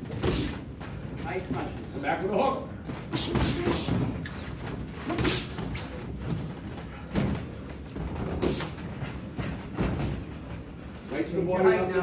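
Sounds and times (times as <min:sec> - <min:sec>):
boxing gloves thudding: 0:00.0 - 0:01.7.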